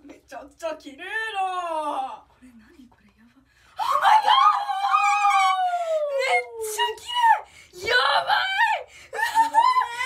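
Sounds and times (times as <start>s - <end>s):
girls squealing with delight: 3.8s - 6.7s.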